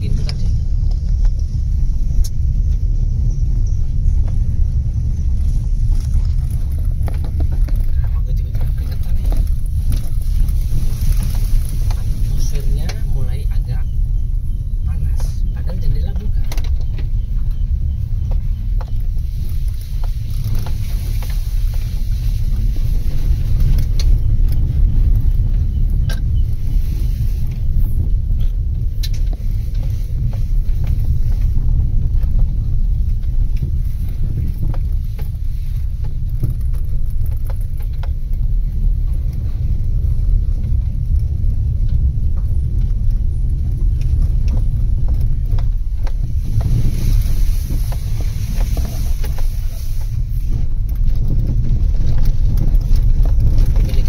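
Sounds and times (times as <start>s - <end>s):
car rumble on dirt track: 0.0s - 54.0s
faint clicks and knocks: 28.4s - 54.0s.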